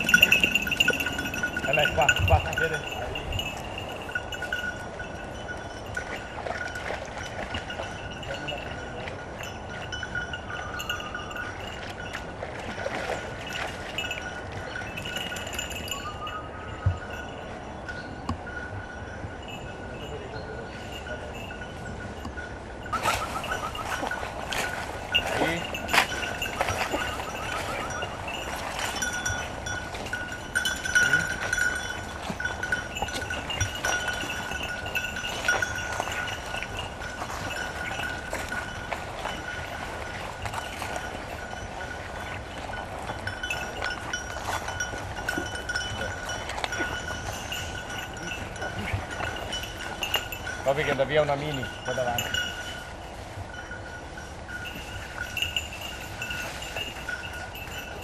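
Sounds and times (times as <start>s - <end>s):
dog collar bell jingling: 0.0s - 58.0s.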